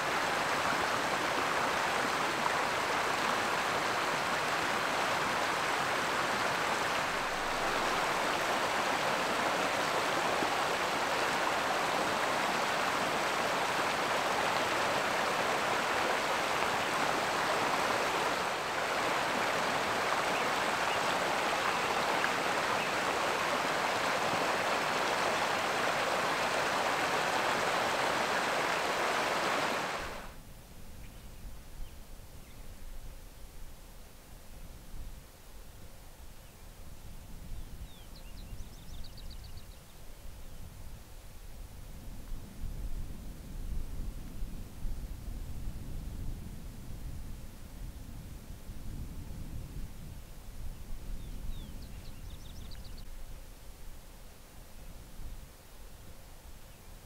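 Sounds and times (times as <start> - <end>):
running water rushing: 0.0 - 30.4.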